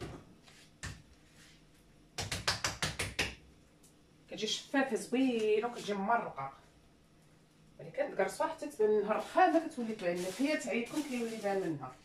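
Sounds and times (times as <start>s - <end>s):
hands patting dough: 2.1s - 3.4s.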